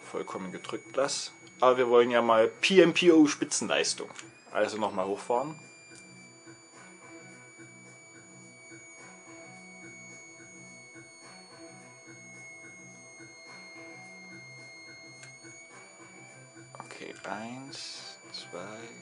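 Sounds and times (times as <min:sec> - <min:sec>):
faint high-pitched electrical whine: 0:00.0 - 0:19.0
quiet music with low pulse: 0:00.0 - 0:19.0.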